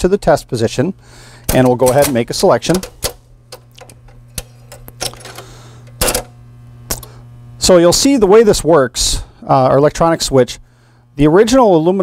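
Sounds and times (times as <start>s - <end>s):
steady low hum: 0.0s - 12.0s
jukebox mechanism clicks: 1.4s - 7.1s.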